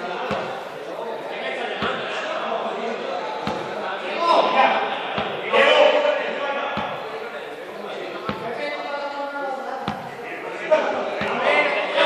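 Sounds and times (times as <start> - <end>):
people talking together: 0.0 - 12.0
sharp thuds: 1.8 - 2.1, 3.4 - 3.8, 5.1 - 5.5.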